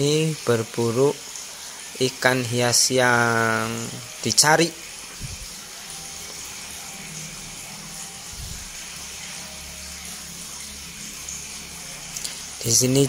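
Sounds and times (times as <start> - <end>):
aquarium water bubbling: 0.0 - 13.0.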